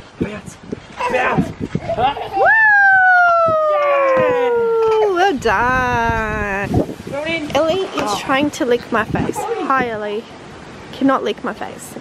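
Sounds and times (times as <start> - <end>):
person cheering woo: 2.2 - 5.2.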